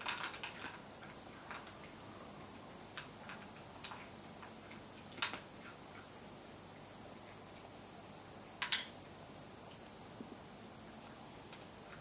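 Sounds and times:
cat crunching dry kibble: 0:00.0 - 0:01.9.

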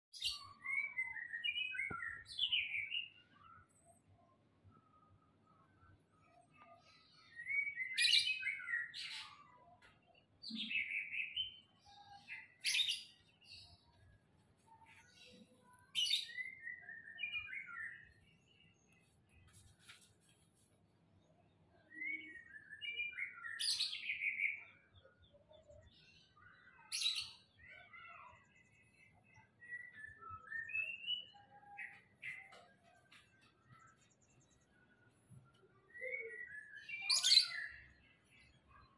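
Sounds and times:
songbirds chirping: 0:00.1 - 0:38.9.

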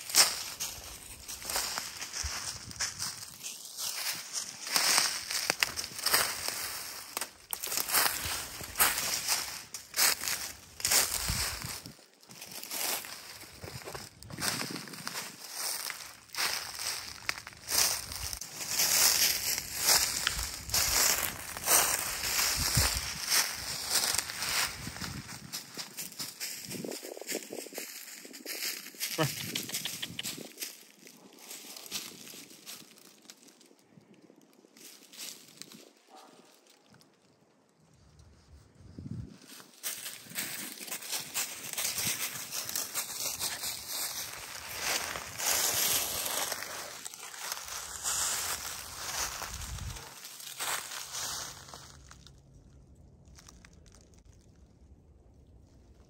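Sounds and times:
footsteps crunching through dry leaves: 0:00.0 - 0:37.0, 0:38.3 - 0:52.5, 0:53.3 - 0:54.4.

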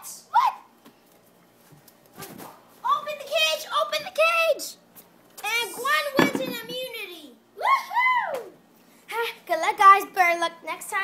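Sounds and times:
thump: 0:06.2 - 0:06.7.

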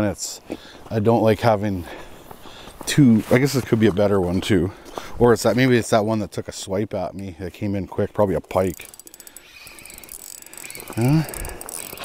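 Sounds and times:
fishing reel gears whirring: 0:08.4 - 0:12.0.

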